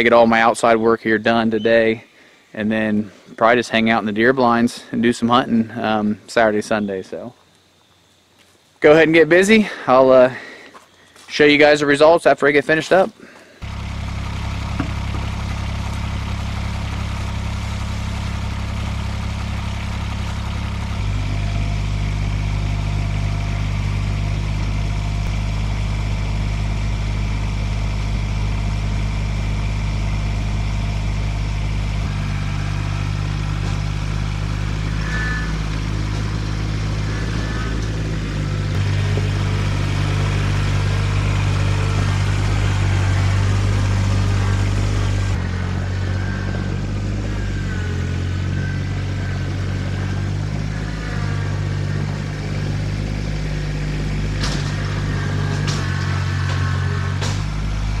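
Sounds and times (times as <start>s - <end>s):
tractor engine running: 11.3s - 58.0s.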